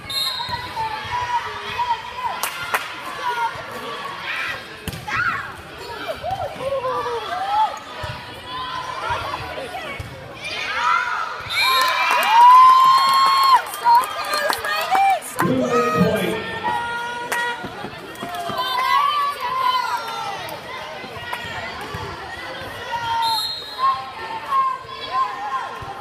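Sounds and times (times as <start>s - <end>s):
crowd shouting and cheering: 0.0s - 26.0s.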